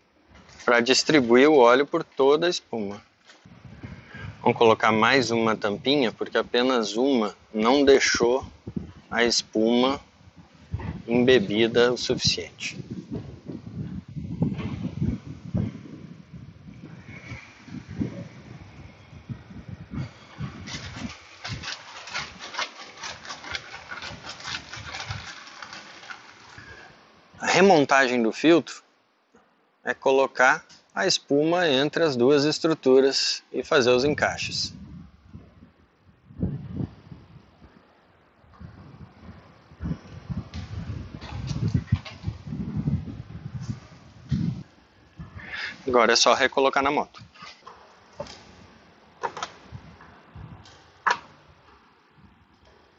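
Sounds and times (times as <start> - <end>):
plastic frames knocking and rubbing: 20.5 - 26.6, 49.2 - 50.1
plastic bag crinkling: 20.6 - 26.9.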